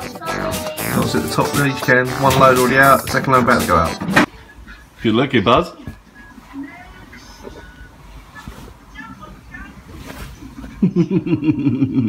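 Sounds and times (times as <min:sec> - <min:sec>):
person laughing: 0:10.7 - 0:12.0.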